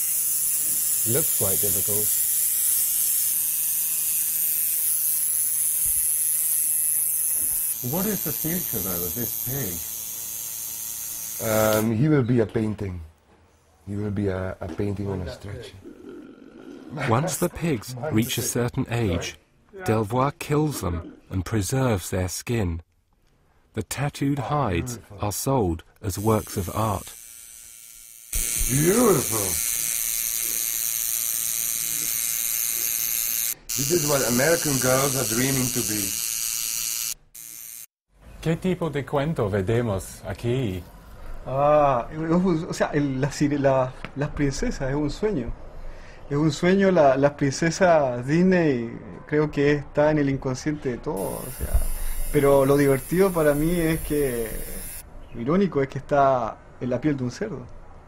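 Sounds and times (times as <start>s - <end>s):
tattoo machine buzzing: 0.0s - 11.9s, 26.2s - 38.0s, 51.2s - 55.0s.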